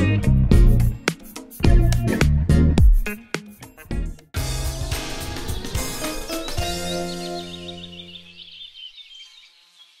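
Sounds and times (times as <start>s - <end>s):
held music chord: 4.4s - 8.4s
canary twittering: 6.0s - 10.0s.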